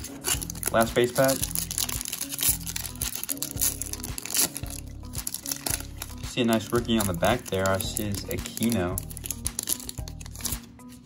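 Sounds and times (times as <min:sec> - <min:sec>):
background music with bass line: 0:00.0 - 0:11.0
foil wrapper crinkling and tearing: 0:00.0 - 0:11.0.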